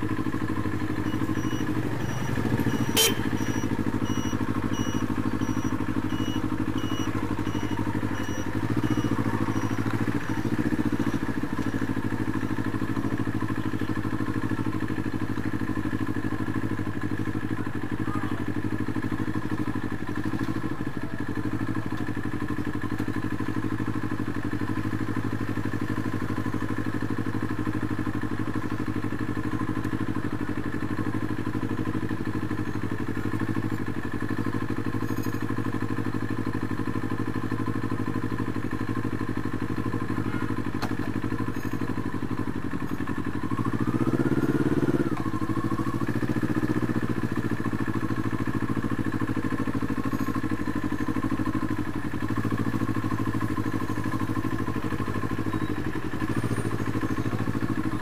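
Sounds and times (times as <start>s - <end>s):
motorcycle engine running: 0.0s - 58.0s.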